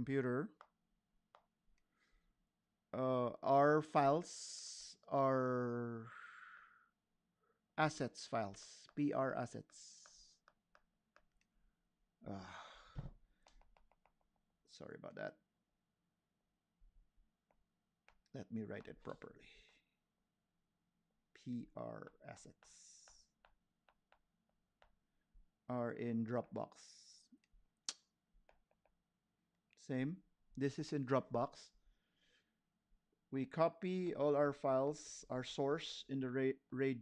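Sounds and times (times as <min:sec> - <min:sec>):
stylus clicking on drawing tablet: 0:10.0 - 0:11.6, 0:13.4 - 0:14.4, 0:22.1 - 0:25.1, 0:27.4 - 0:29.1
person sighing: 0:12.2 - 0:13.2.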